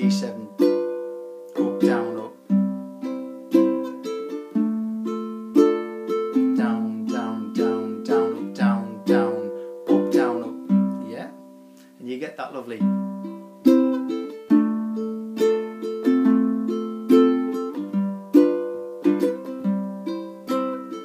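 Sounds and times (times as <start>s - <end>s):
ukulele strumming: 0.0s - 21.0s.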